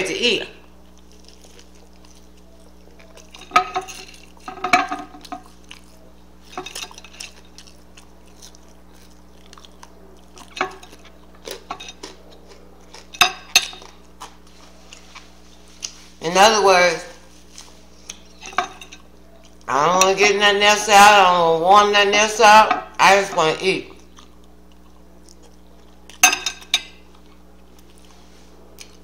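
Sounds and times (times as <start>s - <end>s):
steady low hum: 0.0s - 29.0s
chewing and mouth noises: 0.6s - 16.2s, 17.2s - 20.2s, 23.8s - 29.0s.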